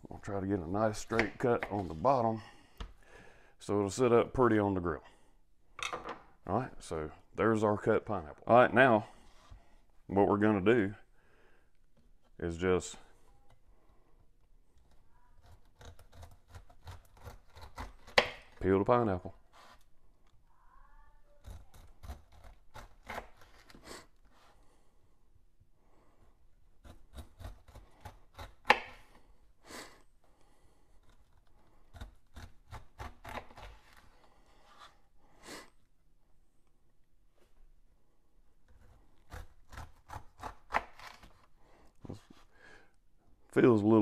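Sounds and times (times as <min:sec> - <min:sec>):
knife cutting pineapple on board: 0:15.4 - 0:18.6, 0:26.8 - 0:29.2, 0:31.0 - 0:34.0, 0:38.7 - 0:41.4.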